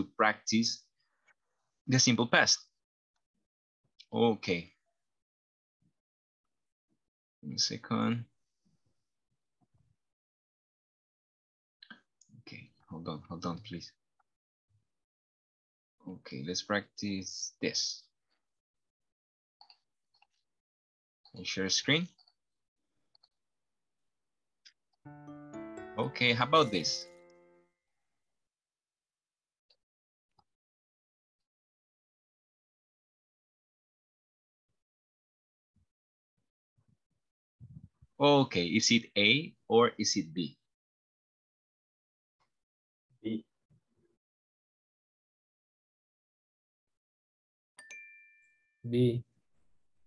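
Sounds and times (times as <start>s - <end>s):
electronic two-tone ding: 25.1s - 27.6s.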